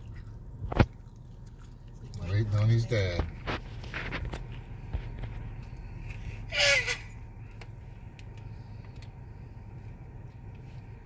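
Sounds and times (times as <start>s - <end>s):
car rumble from inside cabin: 0.0s - 11.0s
short squeal sliding down: 6.5s - 7.2s.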